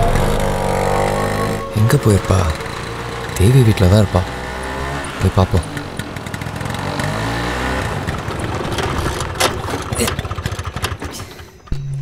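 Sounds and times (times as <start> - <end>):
low steady music drone: 0.0 - 5.3
small motorcycle engine running: 0.0 - 11.7.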